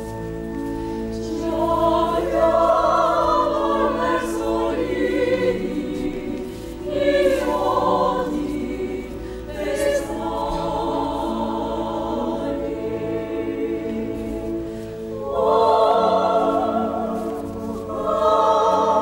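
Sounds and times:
opera chorus singing: 0:00.5 - 0:19.0.

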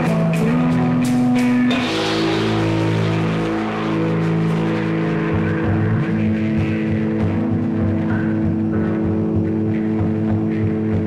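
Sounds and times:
electric guitars droning chords: 0:00.0 - 0:11.0
pulsing low rhythm: 0:00.0 - 0:11.0.

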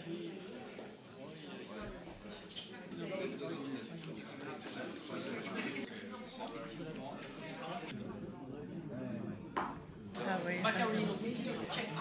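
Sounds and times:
quiet talking: 0:00.0 - 0:12.0.

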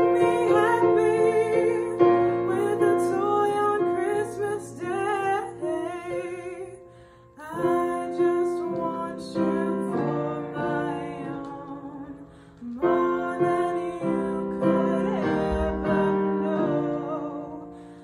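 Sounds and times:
woman singing with vibrato: 0:00.0 - 0:17.8
piano accompaniment: 0:00.0 - 0:18.0.

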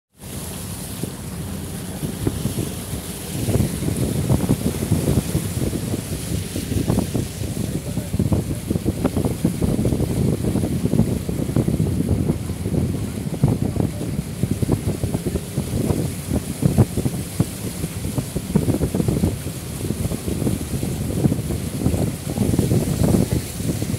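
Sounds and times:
floodwater rushing and splashing: 0:00.1 - 0:23.9
wind on microphone: 0:00.5 - 0:23.9.

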